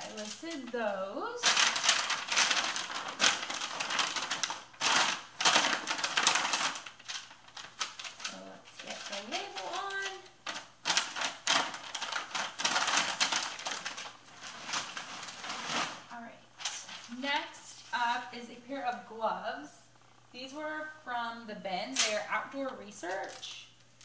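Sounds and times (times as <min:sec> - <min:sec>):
envelope and paper rustling: 0:00.0 - 0:18.4.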